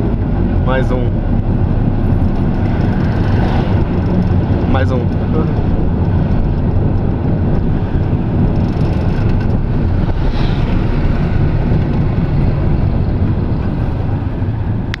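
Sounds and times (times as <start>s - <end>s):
auto rickshaw engine rumble: 0.0s - 15.0s
road noise: 0.0s - 15.0s.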